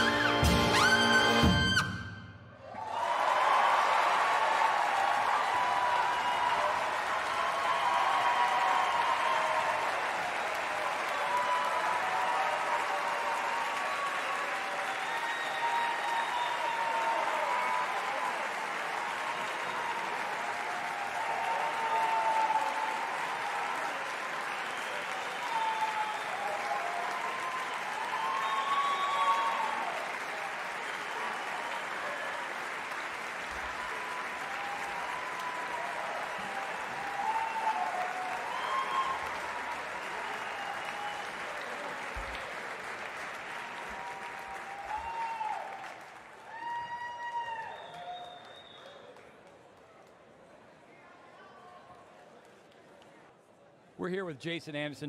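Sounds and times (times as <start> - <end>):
audience applauding: 2.6 - 50.6
whoops and shouts: 2.7 - 9.9, 10.8 - 18.4, 19.5 - 24.0, 24.7 - 30.5, 33.6 - 41.9, 43.8 - 49.1.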